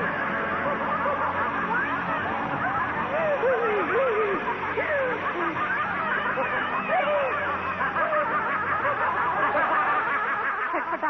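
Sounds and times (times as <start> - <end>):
many voices laughing: 0.0 - 11.0.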